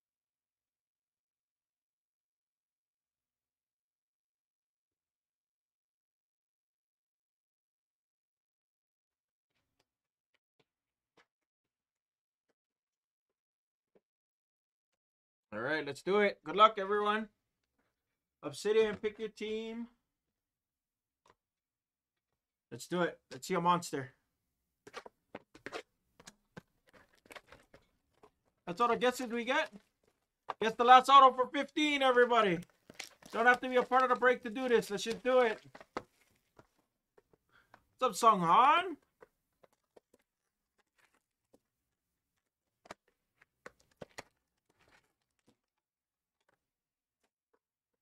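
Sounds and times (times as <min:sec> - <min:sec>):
cardboard and plastic crackles: 0:26.6 - 0:30.3, 0:31.8 - 0:36.8.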